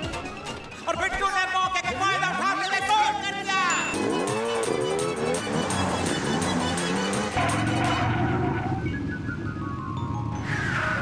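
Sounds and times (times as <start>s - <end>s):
background music with a beat: 0.0s - 3.1s, 3.9s - 8.0s
steady engine hum: 3.8s - 11.0s.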